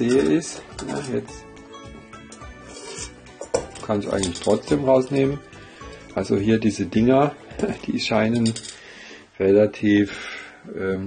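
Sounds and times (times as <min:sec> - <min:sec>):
metal pot clinking: 0:00.0 - 0:01.3, 0:02.2 - 0:06.2, 0:07.5 - 0:08.8
quiet background music: 0:00.0 - 0:11.0.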